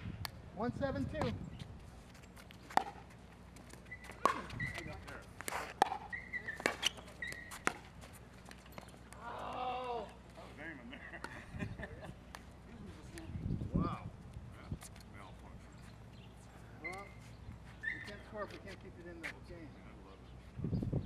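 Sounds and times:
shoes squeaking on court: 1.2s - 9.4s, 14.7s - 19.5s.

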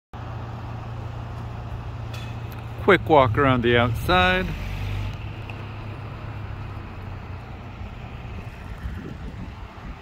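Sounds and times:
low rumble of road traffic: 0.2s - 10.0s.

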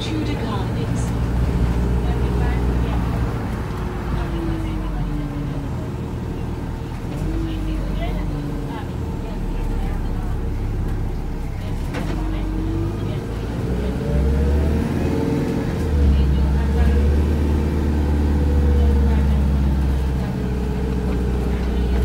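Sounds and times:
bus engine drone: 0.0s - 22.0s.

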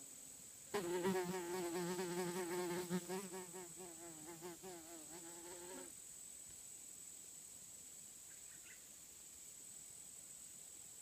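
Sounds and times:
hover fly wingbeat buzz: 0.8s - 5.9s.

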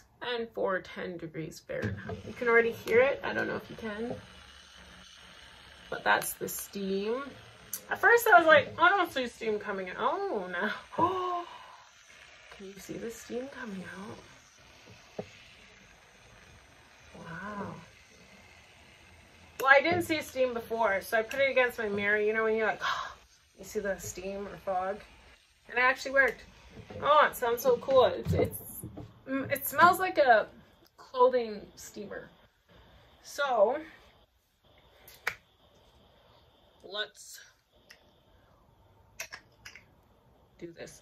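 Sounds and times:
steam straightener hissing: 1.8s - 41.0s.

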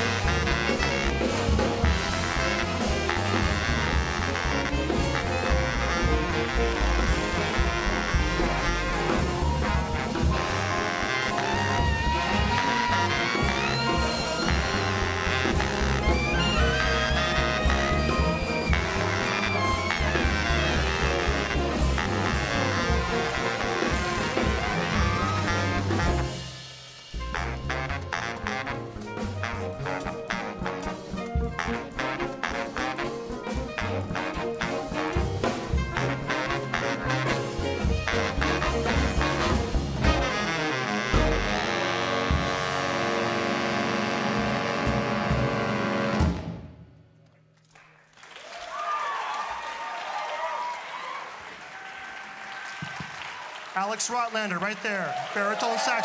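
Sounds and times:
jazz big band playing: 0.0s - 47.0s.

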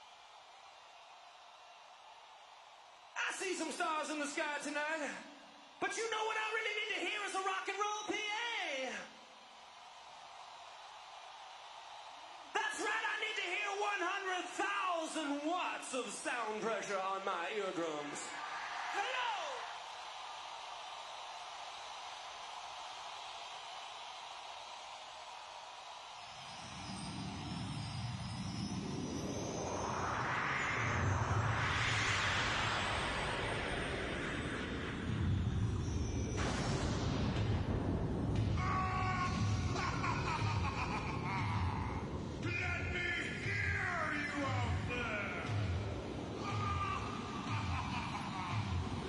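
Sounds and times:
arena crowd noise: 0.0s - 49.0s.

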